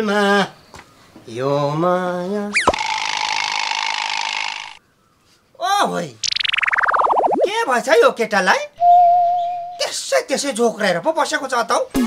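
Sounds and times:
pulsing falling glide: 6.2s - 7.6s.

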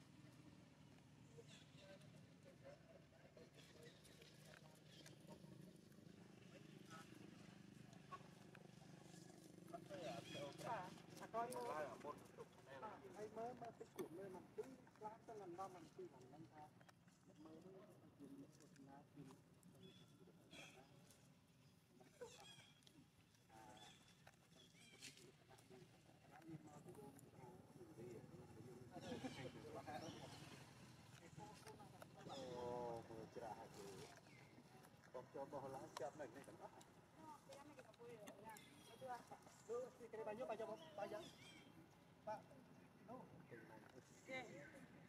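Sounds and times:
infant monkey squeaks: 22.1s - 22.9s.

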